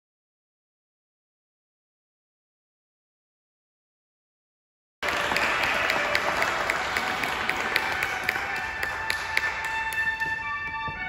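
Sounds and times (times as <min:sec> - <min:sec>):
audience applause in church: 0:05.0 - 0:10.3
organ tones: 0:05.2 - 0:11.0.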